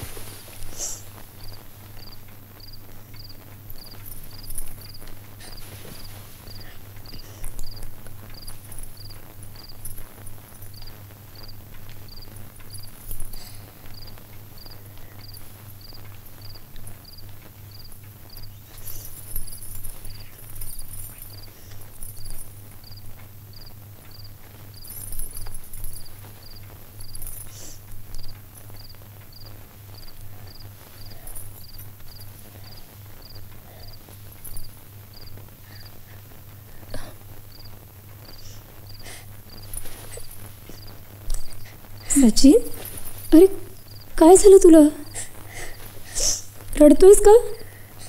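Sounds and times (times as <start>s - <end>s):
crickets chirping: 0.0s - 48.0s
low steady hum: 0.0s - 48.0s.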